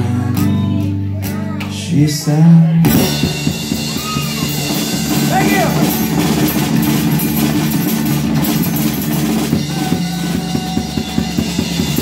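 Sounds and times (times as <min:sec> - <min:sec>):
acoustic guitar: 0:00.0 - 0:12.0
drum kit: 0:02.8 - 0:12.0.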